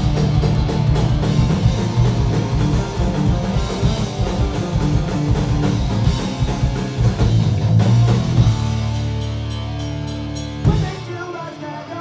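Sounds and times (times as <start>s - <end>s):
distorted guitar and bass chord: 0.0s - 12.0s.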